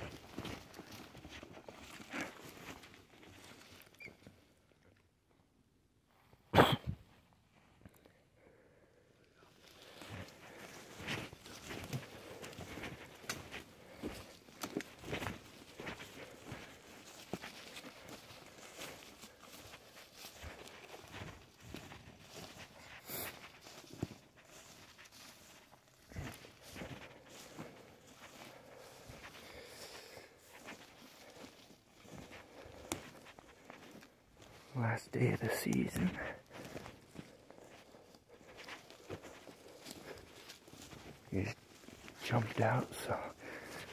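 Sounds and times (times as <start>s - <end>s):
footsteps crunching through dry grass: 0.0s - 4.5s, 9.4s - 43.9s
man's voice: 34.7s - 36.4s, 41.3s - 41.6s, 42.2s - 43.7s.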